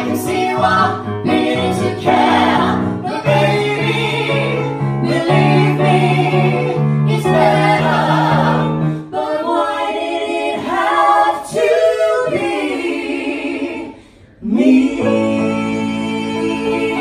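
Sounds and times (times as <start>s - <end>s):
people singing in harmony: 0.0s - 17.0s.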